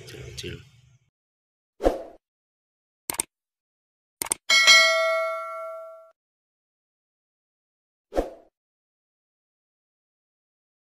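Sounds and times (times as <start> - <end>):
quick mouse clicks: 3.1 - 3.3
bright bell chime: 4.5 - 6.1.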